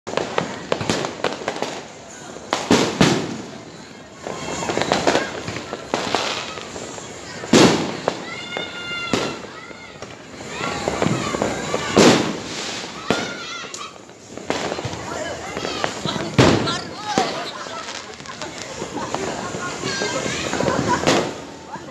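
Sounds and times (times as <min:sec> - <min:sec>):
fireworks bangs and crackling: 0:00.1 - 0:21.9
loud firework blasts: 0:00.1 - 0:21.9.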